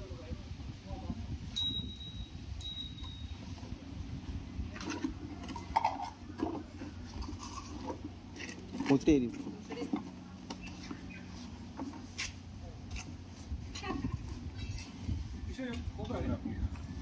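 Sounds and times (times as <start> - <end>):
low steady rumble: 0.0 - 17.0
bell-like ring: 1.6 - 3.5.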